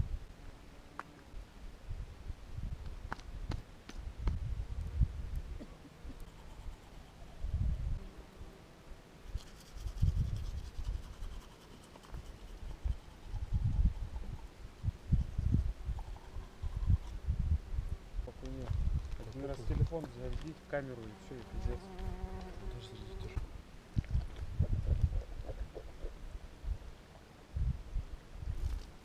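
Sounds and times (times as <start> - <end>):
wind buffeting microphone: 1.9 - 5.6, 7.4 - 8.0, 9.8 - 11.4, 12.1 - 20.4, 22.4 - 26.9, 27.5 - 28.8.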